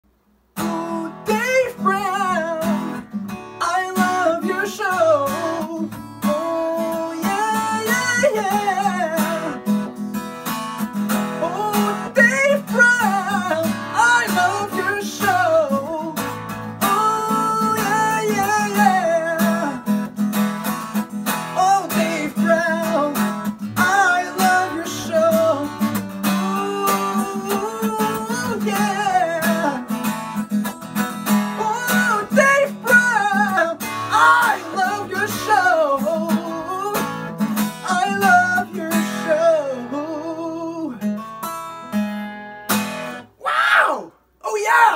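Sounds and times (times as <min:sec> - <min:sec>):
strummed acoustic guitar: 0:00.5 - 0:43.4
person singing: 0:00.6 - 0:10.0, 0:11.4 - 0:19.9, 0:21.5 - 0:30.0, 0:31.6 - 0:41.0.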